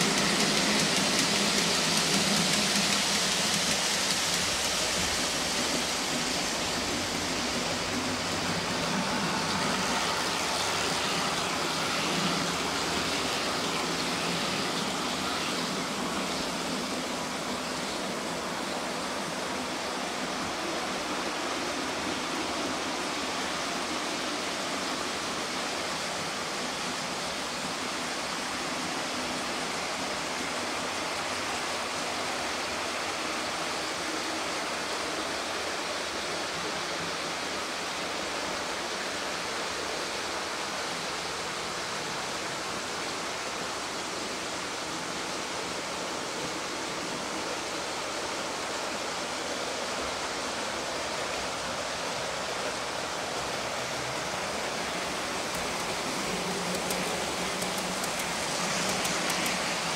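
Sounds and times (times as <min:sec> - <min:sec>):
model train running on track: 0:00.0 - 0:59.9.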